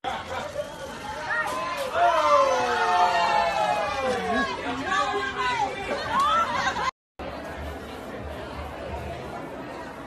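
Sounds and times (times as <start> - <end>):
overlapping indistinct chatter: 0.1 - 10.0.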